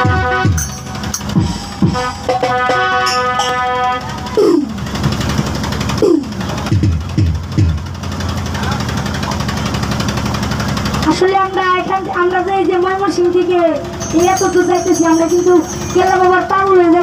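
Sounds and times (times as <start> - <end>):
low hum through pa system: 0.0 - 17.0.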